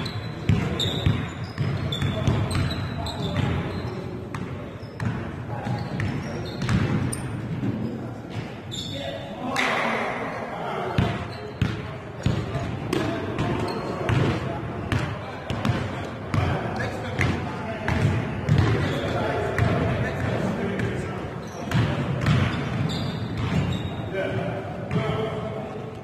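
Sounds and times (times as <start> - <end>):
basketball bouncing on floor: 4.3 - 7.2, 21.7 - 23.8.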